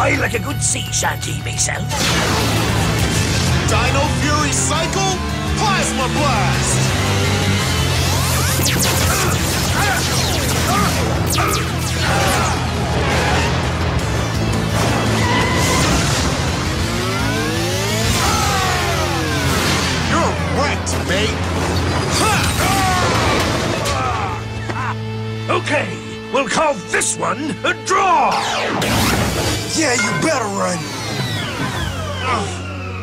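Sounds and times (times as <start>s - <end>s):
background music low notes: 0.0s - 33.0s
motorcycle engine revving: 6.5s - 21.9s.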